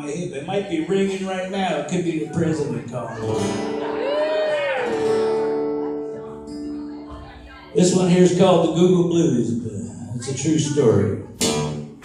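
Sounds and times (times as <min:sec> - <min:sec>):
acoustic guitar chord ringing: 0:04.8 - 0:07.4, 0:11.3 - 0:12.0.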